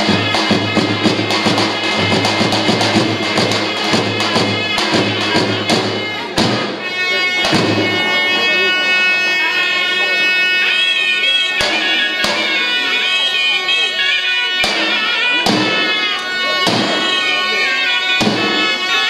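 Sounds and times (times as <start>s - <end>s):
heavy drum strikes: 0.0s - 6.8s, 7.4s - 8.1s, 11.6s - 12.6s, 14.6s - 15.9s, 16.6s - 17.1s, 18.2s - 18.7s
shawm reed melody: 0.0s - 19.0s.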